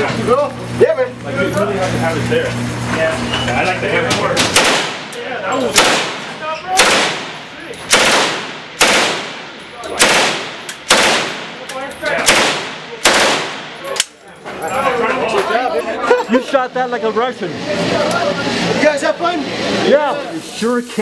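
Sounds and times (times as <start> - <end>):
submachine gun bursts echoing: 5.7 - 13.9.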